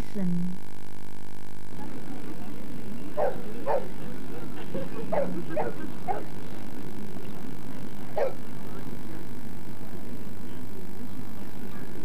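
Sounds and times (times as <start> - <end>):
dog barking: 3.2 - 4.0, 4.8 - 6.4, 8.2 - 8.4.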